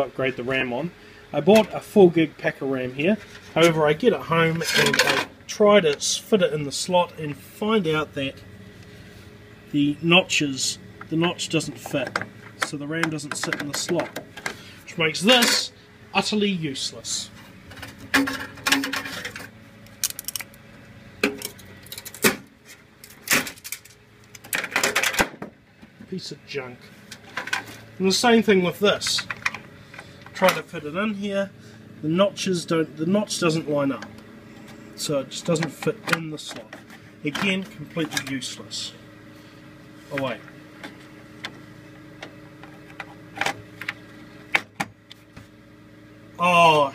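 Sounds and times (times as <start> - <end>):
steady low hum: 0.0 - 46.9.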